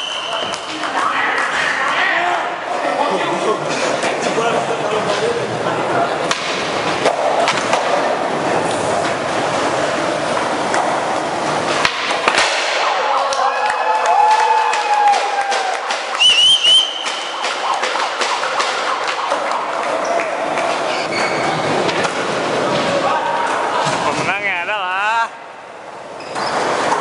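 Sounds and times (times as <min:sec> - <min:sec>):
sharp high whistle: 0:00.0 - 0:00.6, 0:16.1 - 0:17.9
crowd noise: 0:00.0 - 0:27.0
onlookers cheering and yelling: 0:12.7 - 0:21.8
skateboard clacks: 0:14.2 - 0:21.1.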